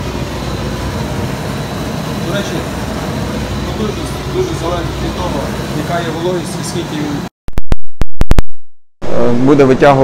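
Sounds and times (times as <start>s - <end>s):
steady running noise: 0.0s - 7.3s.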